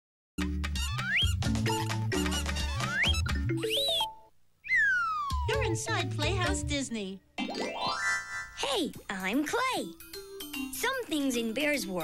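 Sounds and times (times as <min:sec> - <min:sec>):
playful jingle music: 0:00.8 - 0:04.3, 0:05.2 - 0:06.8, 0:07.4 - 0:12.0
squeaky whistle-like rising glides: 0:02.9 - 0:05.5.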